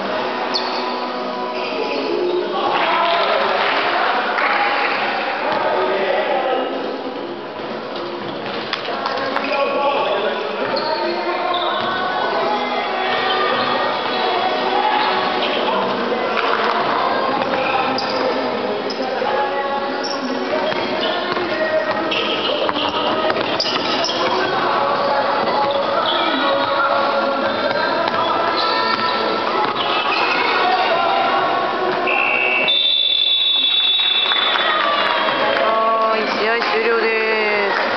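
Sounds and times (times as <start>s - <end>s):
echoing voices and chatter: 0.0s - 37.9s
reverberant gym hall noise: 0.0s - 37.9s.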